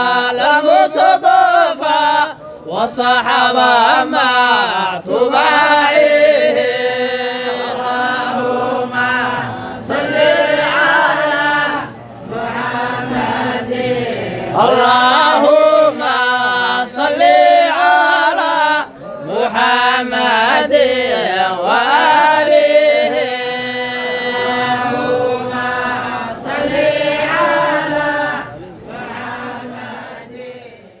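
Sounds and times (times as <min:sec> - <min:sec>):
group of voices chanting: 0:00.0 - 0:31.0.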